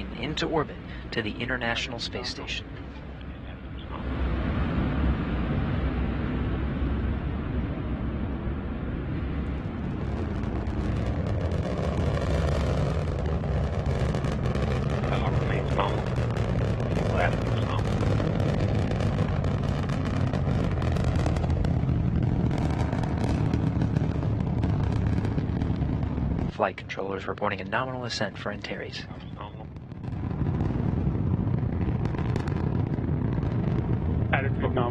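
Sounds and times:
rocket engine crackling: 0.0 - 34.9
rocket engine rumble: 0.0 - 34.9.

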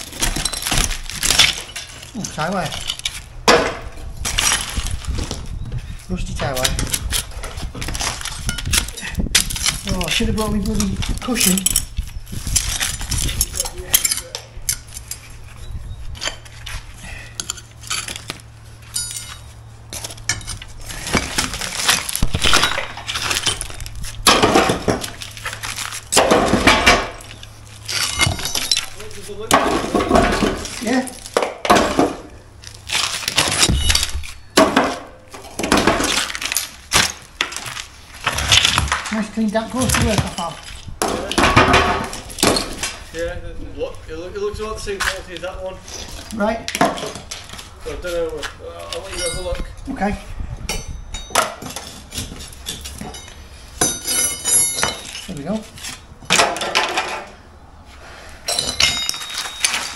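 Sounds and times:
brick pieces clattering: 0.0 - 5.4, 17.4 - 39.2, 39.8 - 43.0, 58.5 - 59.9
steel bar clinking on brick: 18.9 - 19.5, 52.6 - 55.3, 58.5 - 59.9.

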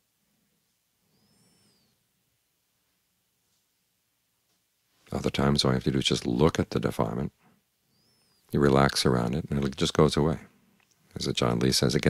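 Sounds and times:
faint whistled call: 1.0 - 2.1, 7.8 - 8.5.

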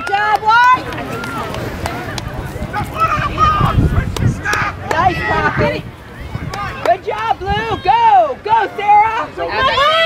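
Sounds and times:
open-air noise: 0.0 - 10.0
people shouting: 0.0 - 10.0.

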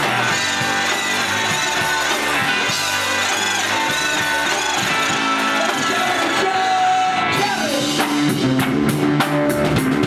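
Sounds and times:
rock band playing: 0.0 - 10.0
kazoo buzzing a melody: 0.2 - 6.4.

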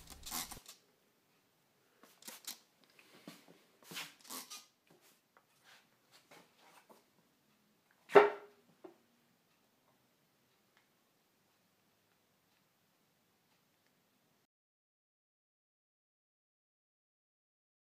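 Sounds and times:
handling noise: 0.0 - 0.7
spray bottle spritzing: 0.0 - 0.7, 2.2 - 2.6.

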